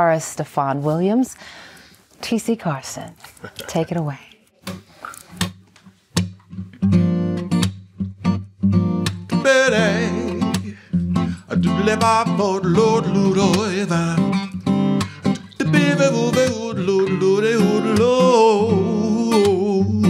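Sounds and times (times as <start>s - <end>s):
person talking: 2.2s - 4.4s
acoustic guitar picking: 4.6s - 20.0s
man singing wordlessly: 9.3s - 20.0s.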